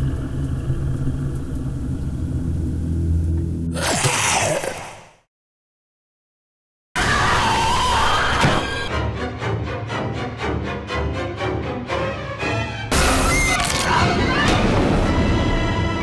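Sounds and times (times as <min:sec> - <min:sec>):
low steady drone: 0:00.0 - 0:03.7
loud dark sound design: 0:00.0 - 0:04.7.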